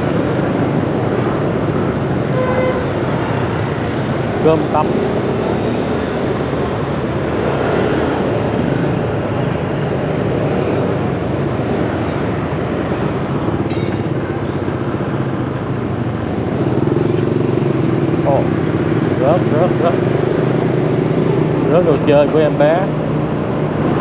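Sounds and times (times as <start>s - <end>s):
road and wind noise: 0.0s - 24.0s.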